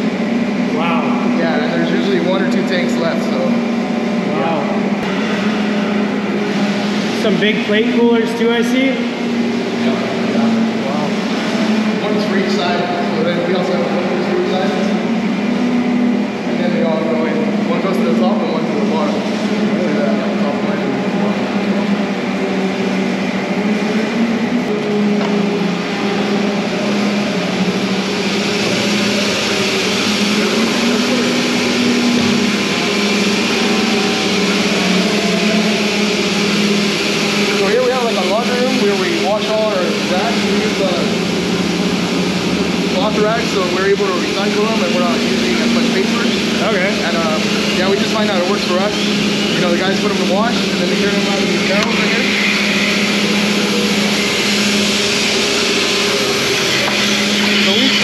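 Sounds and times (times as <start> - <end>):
indistinct voices: 0.0 - 58.0
machinery droning: 0.0 - 58.0.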